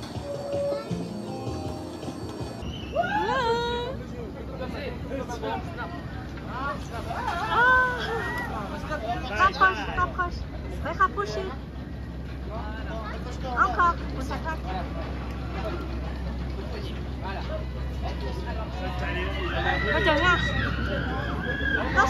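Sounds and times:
people talking and exclaiming: 0:00.0 - 0:11.9, 0:12.5 - 0:22.0.

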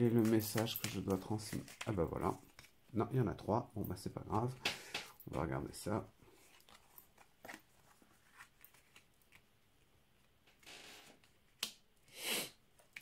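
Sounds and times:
cards rustling and ticking: 0:00.0 - 0:03.0.

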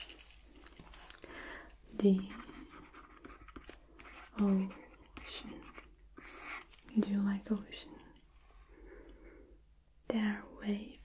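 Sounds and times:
faint breaths: 0:01.0 - 0:01.8, 0:08.3 - 0:09.7
woman speaking softly: 0:01.9 - 0:02.6, 0:04.3 - 0:05.8, 0:06.8 - 0:08.2, 0:10.0 - 0:11.0.

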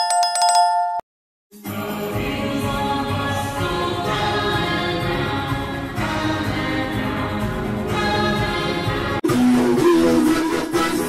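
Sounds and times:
jingling notification bell: 0:00.0 - 0:01.1
music: 0:01.5 - 0:11.0.

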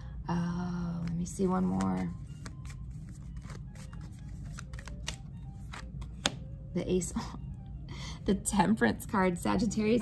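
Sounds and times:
low background hum: 0:00.0 - 0:10.0
cards shuffling and clicking: 0:01.0 - 0:06.5.

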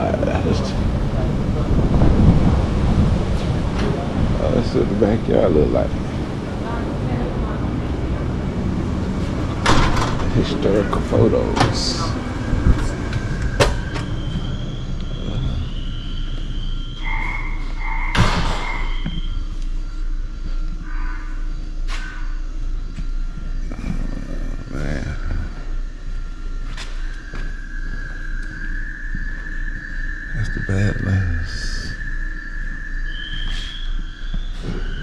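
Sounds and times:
faint high steady tones: 0:00.0 - 0:35.0
low hum: 0:00.0 - 0:35.0.

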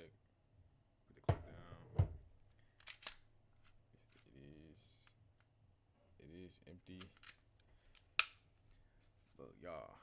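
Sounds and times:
pistol metallic clicks: 0:08.2 - 0:08.4.

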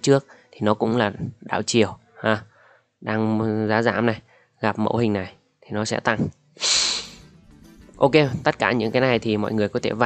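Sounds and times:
man speaking: 0:00.0 - 0:07.2, 0:07.8 - 0:10.0
man sniffing: 0:06.6 - 0:07.3.

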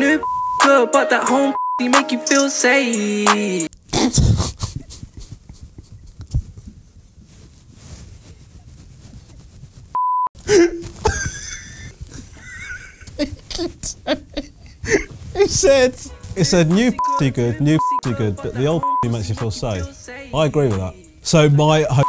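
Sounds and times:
test-tone beep: 0:00.2 - 0:00.7, 0:17.0 - 0:18.0
man laughing: 0:10.5 - 0:16.0.

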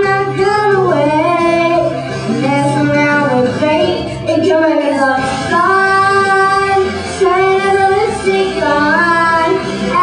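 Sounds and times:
girl singing into a microphone: 0:00.0 - 0:10.0
musical accompaniment: 0:00.0 - 0:10.0.

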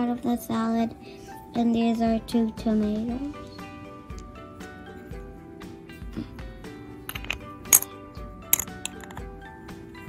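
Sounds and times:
background music: 0:00.0 - 0:10.0
plastic pieces clicking: 0:08.6 - 0:09.2.

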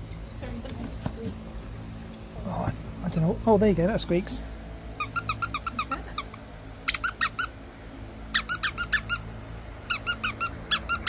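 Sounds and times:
dog toy squeaking: 0:05.0 - 0:07.6, 0:08.3 - 0:09.3, 0:09.9 - 0:11.0.

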